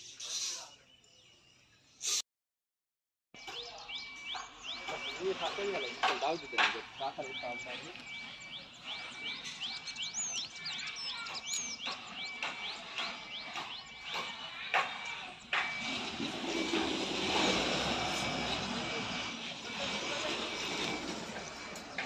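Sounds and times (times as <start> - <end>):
birds chirping: 0.0 - 2.2, 3.4 - 22.0.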